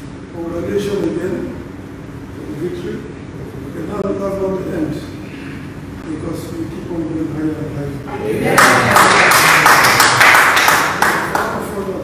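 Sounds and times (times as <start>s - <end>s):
people clapping: 8.4s - 11.9s.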